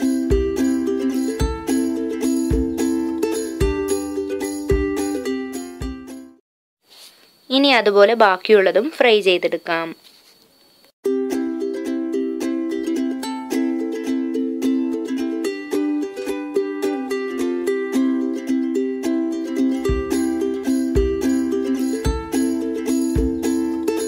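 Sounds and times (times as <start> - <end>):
plucked-string tune: 0.0 - 6.4, 11.0 - 24.0
kick-drum beat: 2.4 - 2.8, 4.7 - 5.1, 19.8 - 22.4, 23.1 - 23.6.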